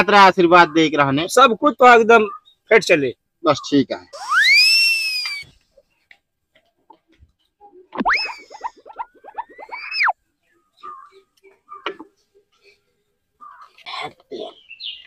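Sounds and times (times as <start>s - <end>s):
rising and falling whistle glide: 4.2s - 5.5s, 8.0s - 10.1s.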